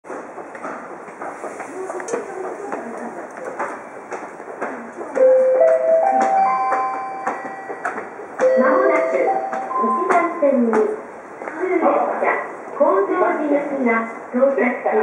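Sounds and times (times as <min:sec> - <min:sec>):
faint voices: 0:01.5 - 0:06.6
platform chime rising tones: 0:08.4 - 0:10.6.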